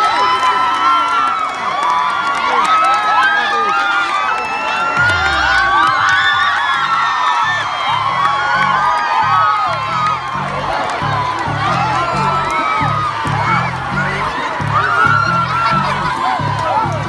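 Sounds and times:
crowd cheering and shouting: 0:00.0 - 0:17.0
music with low beat: 0:05.0 - 0:17.0.

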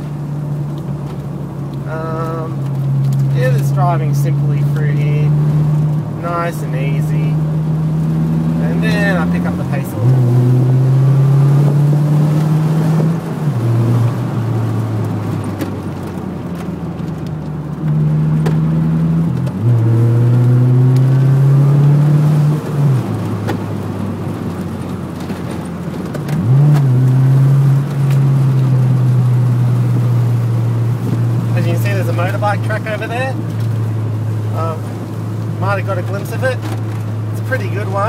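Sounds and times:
car engine revving from inside cabin: 0:02.4 - 0:15.6, 0:17.7 - 0:25.7, 0:26.3 - 0:38.0.

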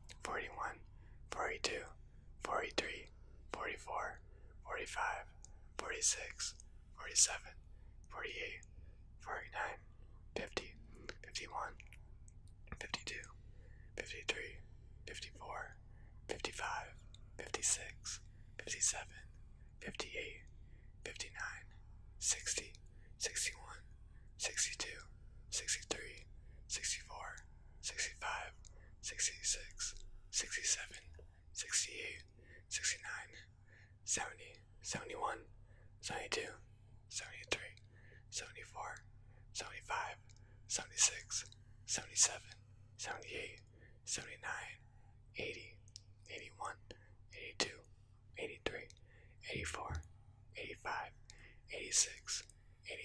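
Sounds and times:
man whispering: 0:00.0 - 0:53.0.

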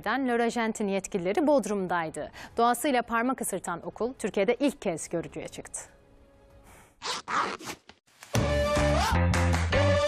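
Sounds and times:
zipper rasping: 0:07.0 - 0:08.0
upbeat background music: 0:08.2 - 0:10.0.

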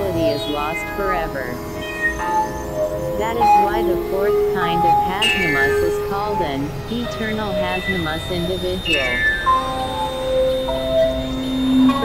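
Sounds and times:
synthesizer drone and held notes: 0:00.0 - 0:12.0.

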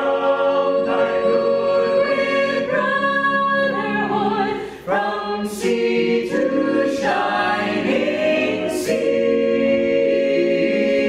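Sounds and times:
mixed vocal ensemble singing harmony: 0:00.0 - 0:11.0.

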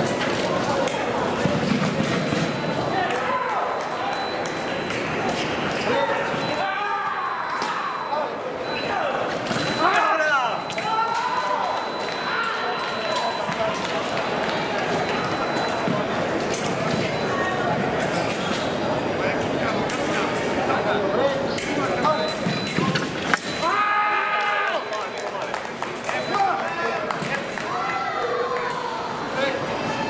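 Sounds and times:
murmur of voices: 0:00.0 - 0:30.0
fencers' footwork taps and squeaks: 0:21.5 - 0:23.6.

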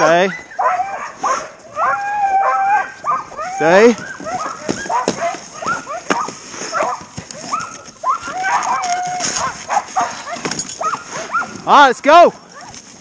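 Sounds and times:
dogs barking and yipping: 0:00.0 - 0:11.7.

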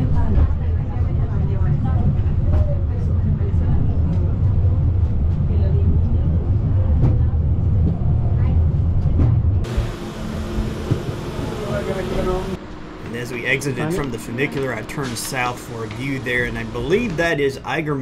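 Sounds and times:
funicular car rumbling: 0:00.0 - 0:17.9
passengers talking: 0:00.0 - 0:18.0.

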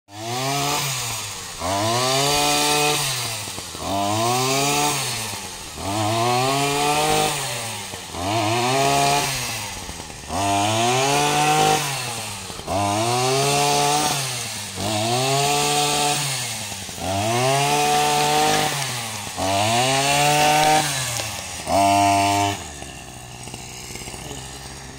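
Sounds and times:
small petrol engine tilling soil: 0:00.1 - 0:24.9.

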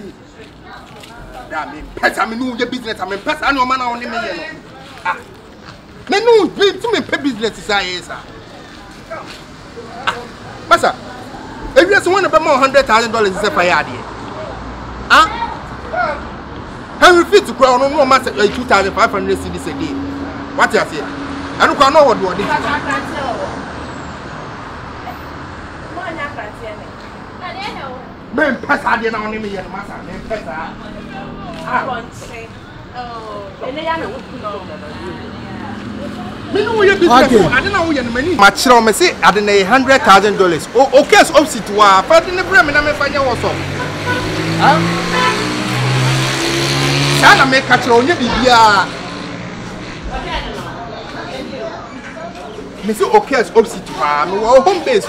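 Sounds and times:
road traffic: 0:00.0 - 0:55.0
man speaking: 0:11.7 - 0:14.1, 0:17.0 - 0:20.0, 0:36.5 - 0:43.8, 0:44.4 - 0:45.7, 0:47.1 - 0:49.2, 0:52.8 - 0:55.0.

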